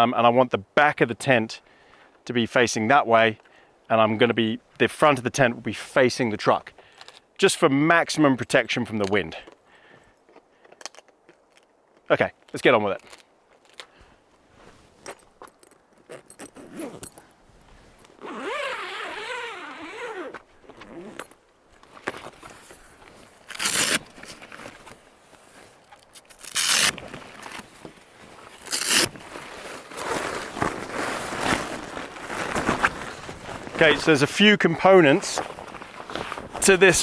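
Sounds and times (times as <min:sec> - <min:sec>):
canvas rustling: 0:12.9 - 0:37.0
zip being pulled open: 0:16.1 - 0:17.2, 0:18.2 - 0:21.4, 0:23.4 - 0:24.2, 0:26.1 - 0:27.5, 0:28.6 - 0:29.2.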